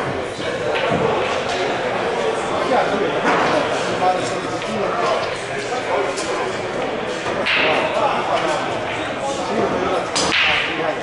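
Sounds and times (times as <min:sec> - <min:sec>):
chatter in pool hall: 0:00.0 - 0:11.0.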